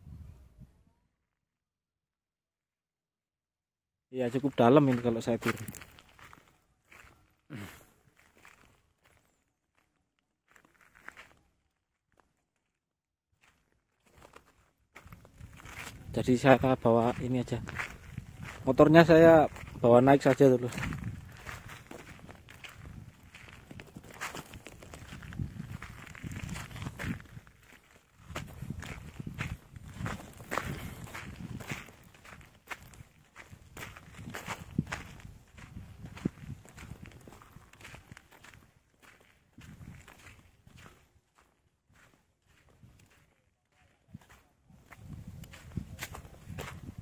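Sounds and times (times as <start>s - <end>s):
low rumbling wind noise: 0.0s - 0.8s, 15.1s - 19.9s, 20.6s - 27.6s, 28.2s - 37.8s, 39.6s - 40.8s, 44.8s - 47.0s
footsteps on sand and gravel: 4.2s - 12.3s, 13.4s - 47.0s.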